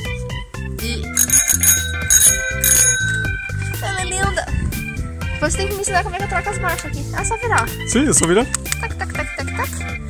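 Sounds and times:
background music with steady beat: 0:00.0 - 0:10.0
bicycle bell ringing: 0:01.2 - 0:04.4.

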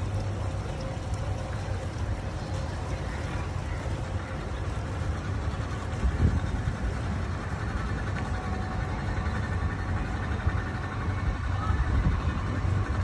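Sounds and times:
boat engine rumble: 0:00.0 - 0:13.0.

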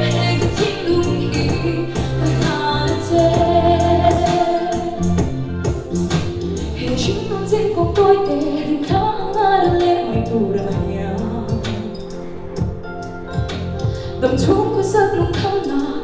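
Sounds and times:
young woman singing into microphone: 0:00.0 - 0:05.3, 0:06.8 - 0:12.4, 0:14.0 - 0:16.0
music with bass line and beat: 0:00.0 - 0:16.0.

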